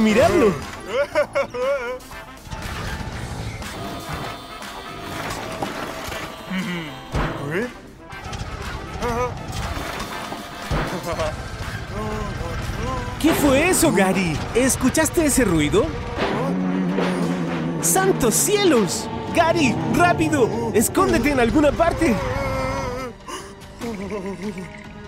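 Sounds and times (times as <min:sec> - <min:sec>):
cartoon background music: 0:00.0 - 0:25.0
trash can crash: 0:08.2 - 0:11.3, 0:16.0 - 0:18.3.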